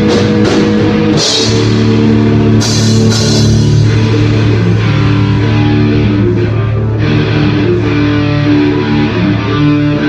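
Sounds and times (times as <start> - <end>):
rock band playing live: 0.0 - 10.0
cymbal crashes: 0.1 - 6.3.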